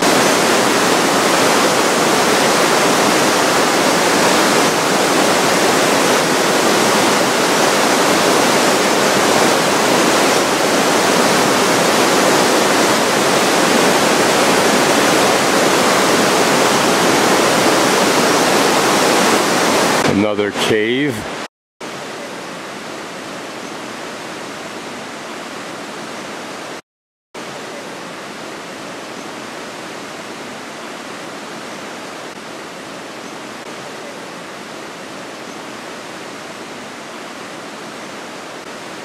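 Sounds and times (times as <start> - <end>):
river rushing through gorge: 0.0 - 26.7.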